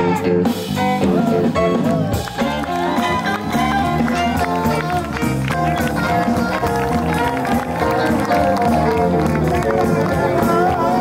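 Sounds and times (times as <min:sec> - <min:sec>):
band playing swing music: 0:00.0 - 0:11.0.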